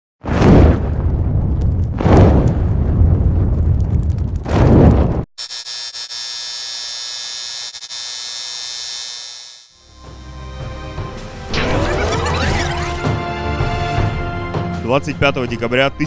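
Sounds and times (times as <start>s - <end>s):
deep boom with low rumble: 0.2s - 5.2s
bright electric buzz: 5.4s - 12.8s.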